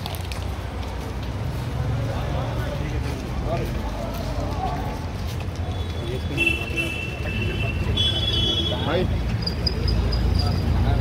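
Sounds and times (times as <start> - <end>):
men talking: 1.8 - 11.0.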